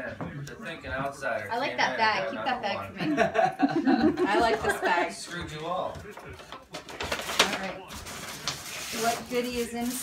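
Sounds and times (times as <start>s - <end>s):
paper bag rustling and crinkling: 6.2s - 10.0s.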